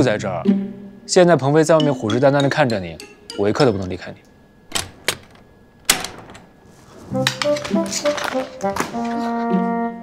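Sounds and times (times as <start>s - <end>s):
clicks and knocks: 4.7s - 9.0s.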